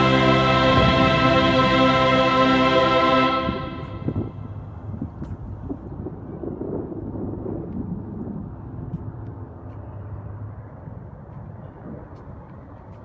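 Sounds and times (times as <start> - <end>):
low steady city rumble: 0.0 - 13.0.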